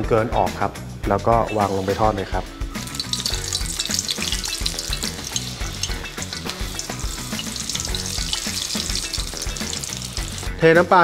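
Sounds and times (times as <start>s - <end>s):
seafood deep-frying in oil: 2.7s - 10.6s.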